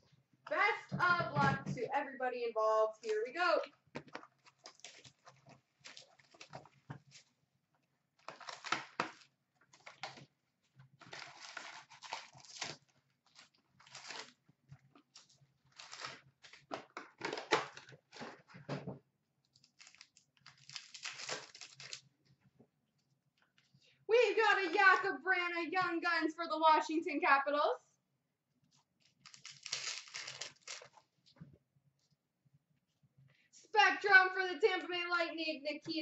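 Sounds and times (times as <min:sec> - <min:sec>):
wrapper tearing and crinkling: 0:04.4 - 0:07.2, 0:08.2 - 0:10.2, 0:11.0 - 0:14.4, 0:15.1 - 0:17.9, 0:19.5 - 0:22.1, 0:29.2 - 0:31.0
cards being handled: 0:29.2 - 0:31.0.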